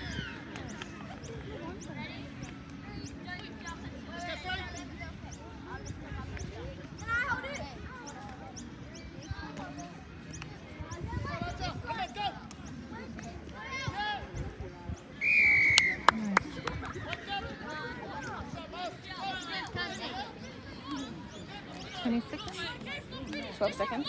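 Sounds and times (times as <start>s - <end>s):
distant shouts and chatter: 0.0s - 24.0s.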